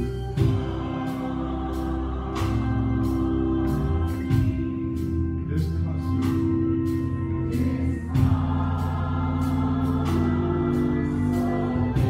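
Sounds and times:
drum and cymbal beat: 0.0 - 12.0
gospel choir singing: 0.0 - 12.0
organ chords: 0.0 - 12.0.

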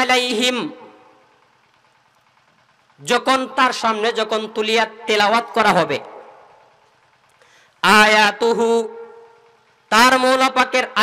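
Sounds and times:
man's amplified voice: 0.0 - 1.2, 3.0 - 6.6, 7.8 - 11.0.

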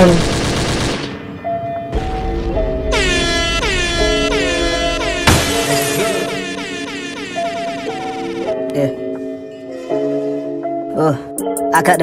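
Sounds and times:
held synth notes: 1.4 - 10.7
air horn effect: 2.9 - 8.5.

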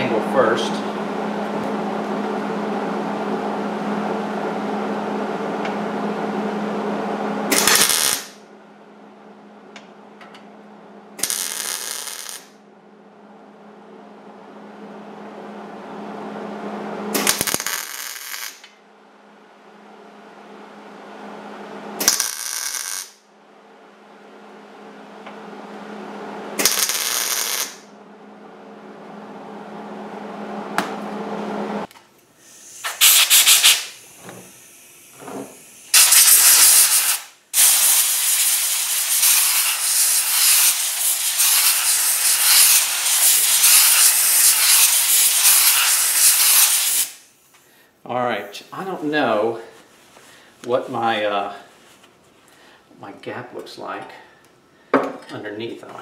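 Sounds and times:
welder hum: 7.4 - 8.4, 11.1 - 12.6, 16.6 - 18.8, 21.3 - 23.2, 25.2 - 27.9, 29.4 - 47.4
welding arc crackling: 7.5 - 8.4, 11.2 - 12.6, 17.2 - 18.8, 22.0 - 23.2, 26.6 - 27.8, 32.8 - 34.2, 34.8 - 47.3
air blow gun hissing: 32.4 - 47.3.

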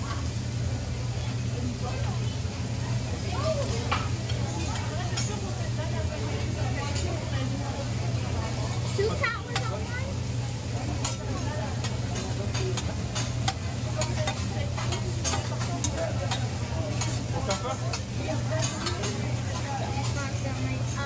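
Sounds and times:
food sizzling: 0.0 - 21.0
metal spatula scraping griddle: 11.9 - 20.2.

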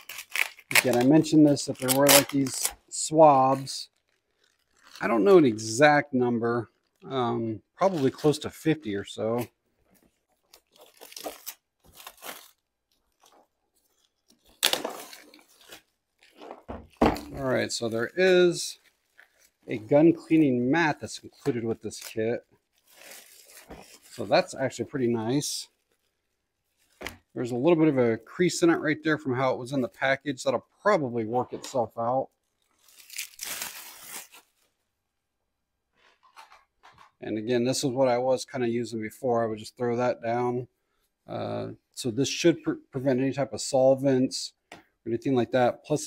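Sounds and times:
plastic wrap tearing and crinkling: 0.0 - 5.5, 10.3 - 27.3, 32.4 - 34.7.

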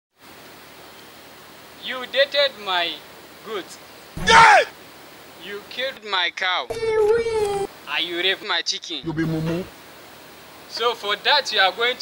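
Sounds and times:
steady background hiss: 0.2 - 12.0
man's voice: 4.2 - 4.7, 5.6 - 9.7.

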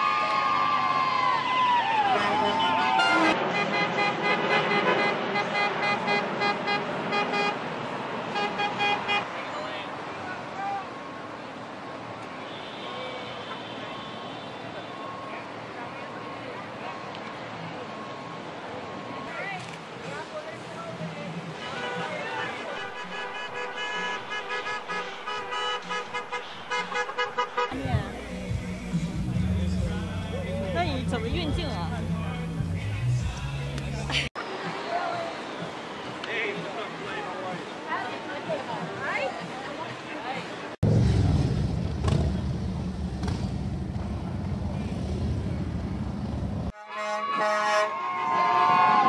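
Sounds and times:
street noise: 0.0 - 49.0
vehicle horns honking: 2.2 - 7.6, 8.3 - 9.6, 12.3 - 15.3, 21.5 - 33.4, 46.7 - 49.0
crowd voices: 12.9 - 40.8.

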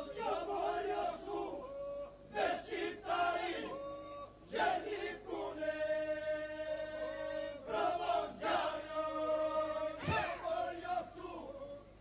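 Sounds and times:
polyphonic group singing: 0.0 - 12.0.

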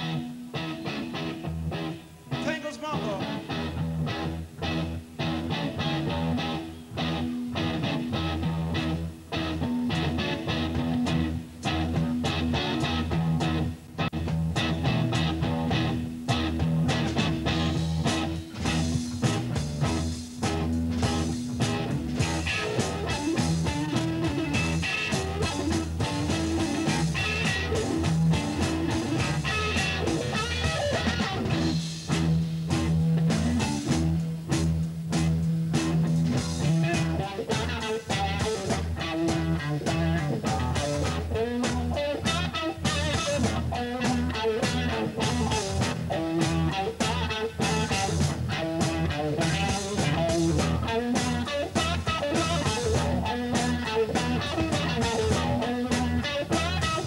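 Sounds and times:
distorted electric guitar: 0.0 - 57.0
sustained bass notes: 0.0 - 57.0
steady drumming: 7.2 - 57.0.

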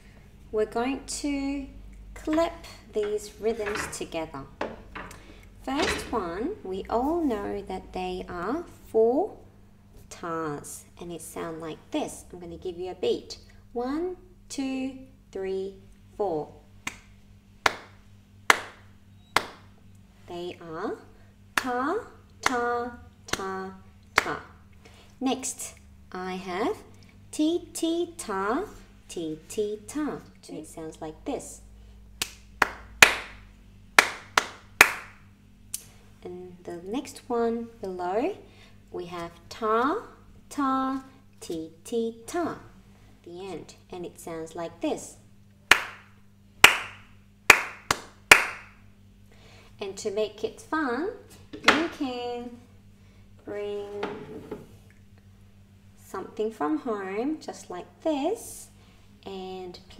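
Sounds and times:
hand claps: 16.8 - 18.8, 19.4 - 19.6, 32.2 - 33.4, 34.0 - 35.2, 45.7 - 48.8.

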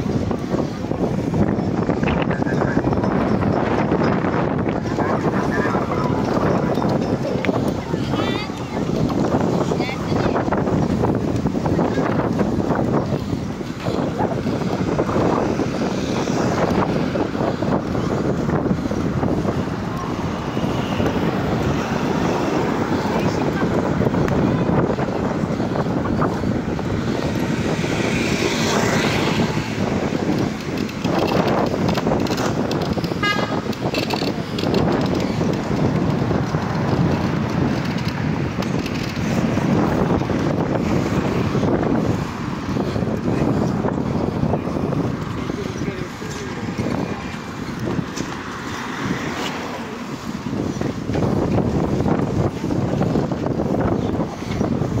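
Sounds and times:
passers-by talking: 0.0 - 55.0
street traffic: 0.0 - 55.0
wind buffeting microphone: 0.0 - 55.0.

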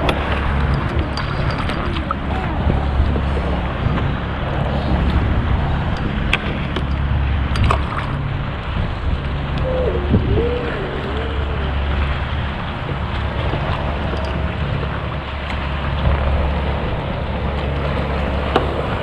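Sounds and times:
water lapping against hull: 0.0 - 19.0
wind buffeting microphone: 0.0 - 19.0
short wavering tone: 9.6 - 12.0.

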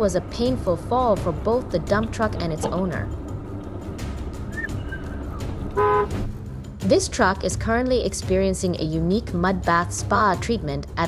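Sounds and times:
truck rumbling on slushy road: 0.0 - 6.6
vehicle horn blast: 5.7 - 6.3.

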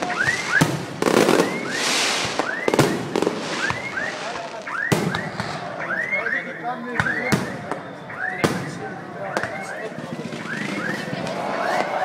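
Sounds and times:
firework bangs: 0.0 - 6.3, 6.9 - 12.0.

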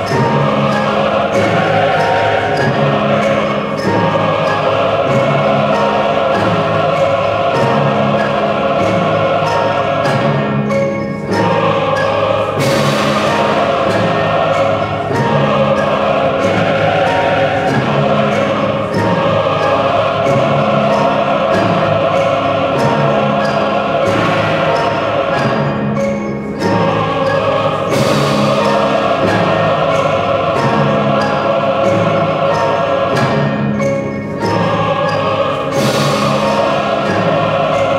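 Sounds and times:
choir holding chords: 0.0 - 37.9
orchestra playing: 0.0 - 37.9
percussion strokes: 0.0 - 37.9.

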